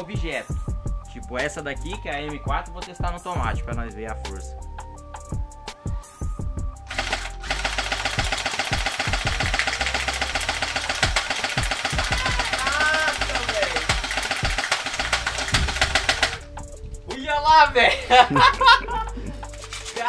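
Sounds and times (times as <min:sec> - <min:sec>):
airsoft rifle full-auto burst: 0:06.9 - 0:16.5.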